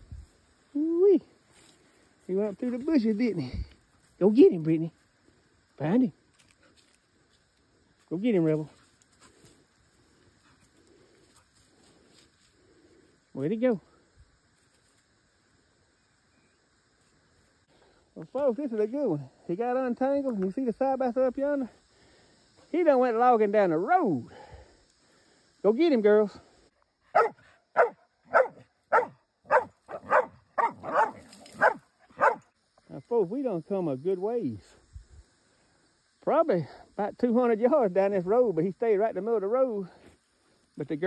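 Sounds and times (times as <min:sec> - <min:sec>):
dogs barking: 0:27.1 - 0:32.5.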